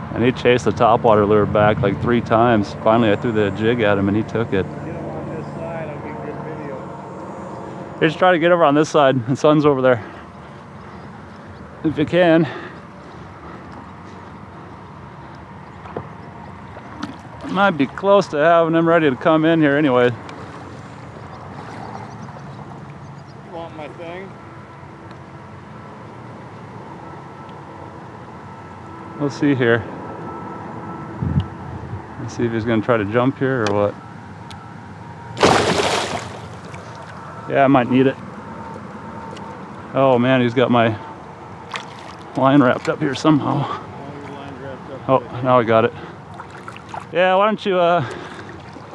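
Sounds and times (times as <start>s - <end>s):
wind: 0.0s - 48.9s
water around a kayak: 7.2s - 29.1s, 35.1s - 48.9s
fish splashing at surface: 35.4s - 37.2s, 41.7s - 42.4s.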